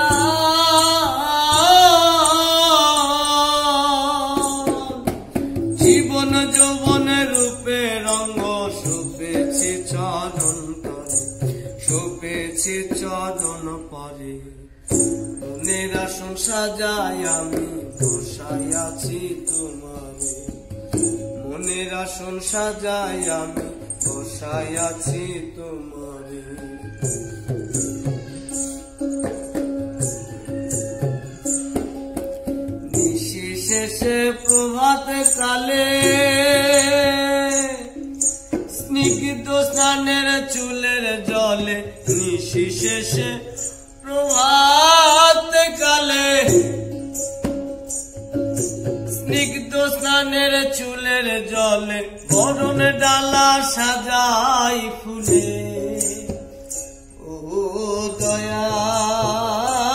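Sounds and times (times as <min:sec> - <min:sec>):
hand drum: 0:00.0 - 0:13.8, 0:14.9 - 0:25.8, 0:26.4 - 0:59.9
man singing folk song: 0:00.0 - 0:31.0, 0:32.8 - 0:59.9
plucked string instrument: 0:00.0 - 0:59.9.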